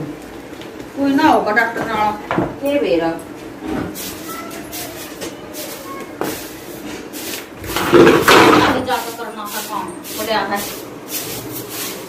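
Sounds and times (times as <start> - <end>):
woman's voice: 1.0 - 3.2, 8.5 - 10.8
pan scraping on concrete: 3.6 - 12.0.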